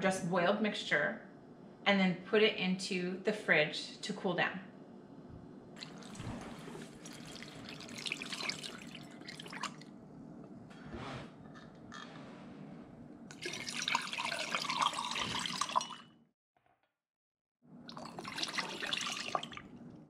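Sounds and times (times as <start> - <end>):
liquid pouring into glass jar: 5.8 - 9.9, 13.3 - 16.1, 17.9 - 19.8.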